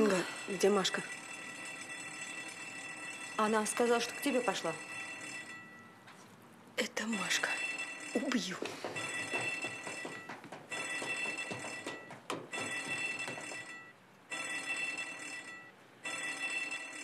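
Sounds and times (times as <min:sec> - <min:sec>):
electric alarm bell ringing: 0:00.0 - 0:06.2, 0:07.1 - 0:17.0.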